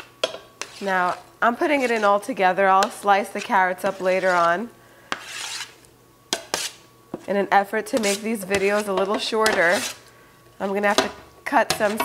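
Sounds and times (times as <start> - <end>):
metal spatula scraping pan: 0.0 - 12.0.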